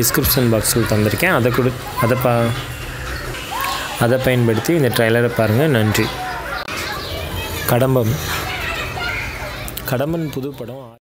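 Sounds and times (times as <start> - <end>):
man speaking: 0.0 - 2.7, 3.9 - 6.2
background chatter: 0.0 - 11.0.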